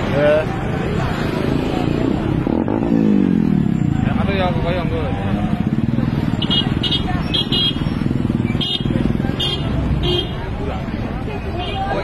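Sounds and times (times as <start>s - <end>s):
crowd voices: 0.0s - 12.0s
vehicle engines running: 0.0s - 12.0s.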